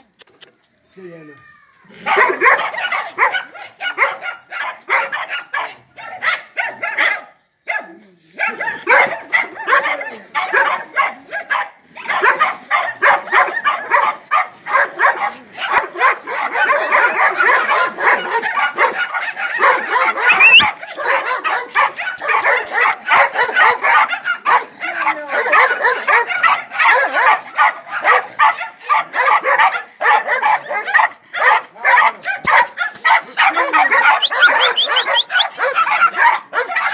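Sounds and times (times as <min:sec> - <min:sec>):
dogs barking rapidly: 0:02.0 - 0:36.9.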